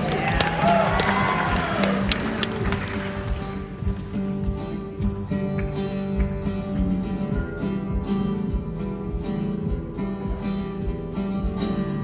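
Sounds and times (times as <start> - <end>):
audience cheering and clapping: 0.0 - 4.1
acoustic guitar playing: 0.0 - 12.0.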